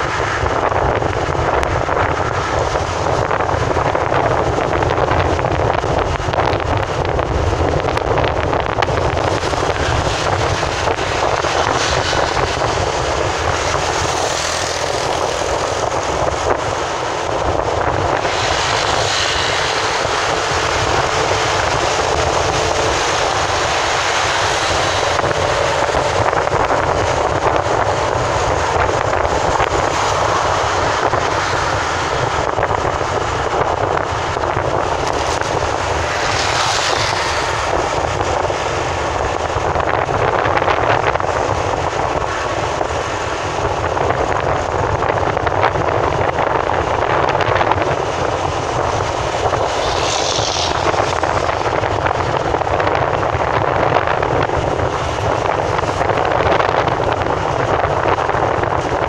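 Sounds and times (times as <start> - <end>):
traffic passing close by: 0.0 - 59.0
vehicle driving on highway: 0.0 - 59.0.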